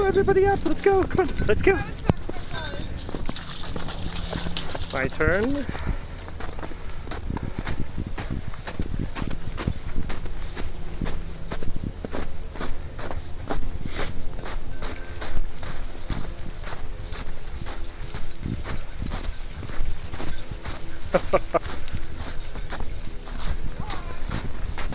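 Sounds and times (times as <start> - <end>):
footsteps crunching in snow: 0.0 - 24.9.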